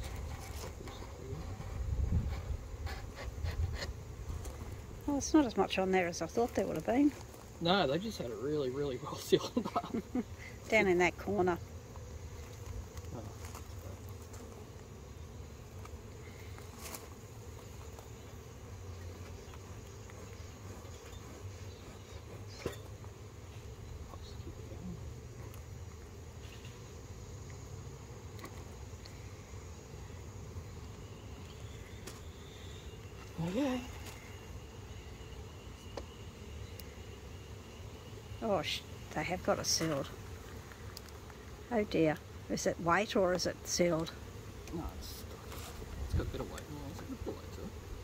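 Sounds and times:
honeybees humming: 0.0s - 48.0s.

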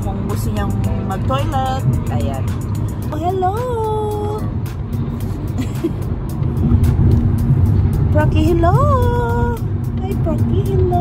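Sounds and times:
background music with light beat: 0.0s - 11.0s
car cabin road rumble: 0.0s - 11.0s.

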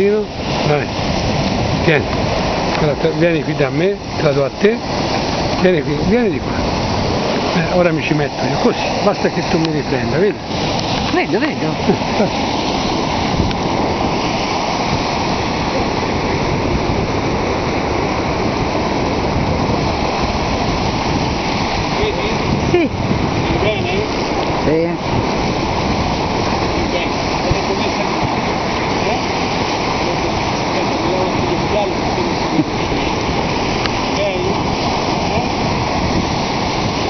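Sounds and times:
waves breaking on rocky shore: 0.0s - 37.0s.

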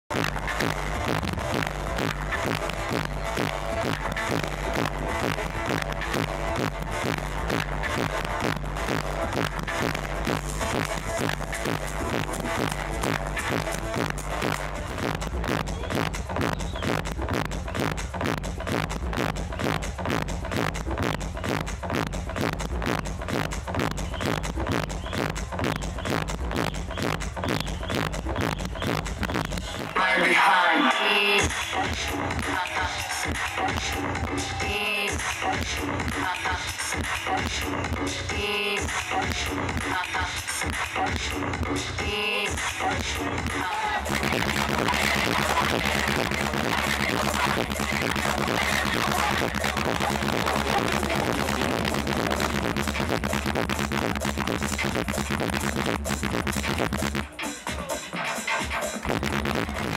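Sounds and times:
loud bass-heavy live music: 0.0s - 59.9s.

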